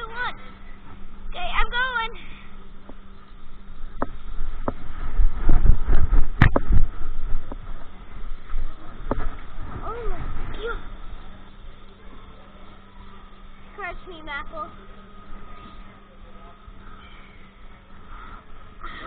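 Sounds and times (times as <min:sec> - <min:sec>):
camera handling rumble: 0:04.0 - 0:07.7.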